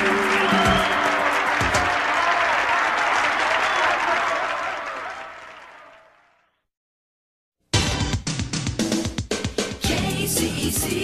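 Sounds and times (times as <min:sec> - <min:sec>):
crowd applause: 0:00.0 - 0:06.5.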